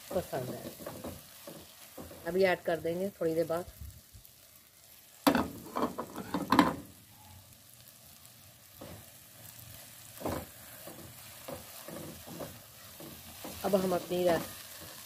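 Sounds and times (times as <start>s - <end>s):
faint oil sizzle: 0.0s - 15.0s.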